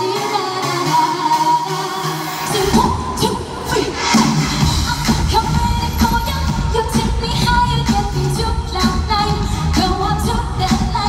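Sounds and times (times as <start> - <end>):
dance-pop song over arena speakers: 0.0 - 11.0
person singing lead vocal: 0.0 - 11.0
steady beat with heavy bass: 2.4 - 11.0.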